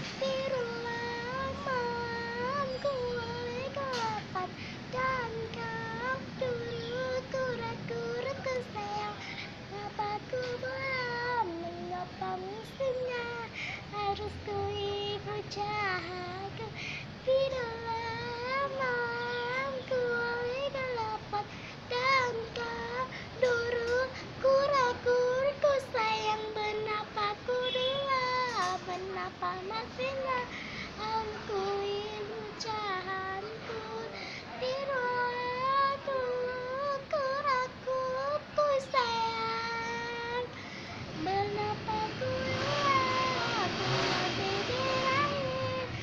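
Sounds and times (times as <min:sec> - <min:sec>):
girl singing slow melody: 0:00.0 - 0:46.0.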